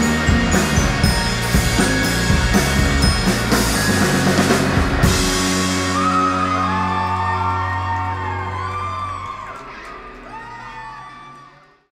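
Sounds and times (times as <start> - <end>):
bass guitar: 0.0 - 11.9
audience whooping and cheering: 5.4 - 11.9.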